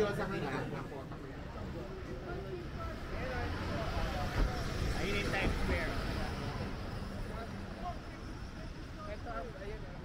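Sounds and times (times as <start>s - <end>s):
voices of passers-by: 0.0s - 10.0s.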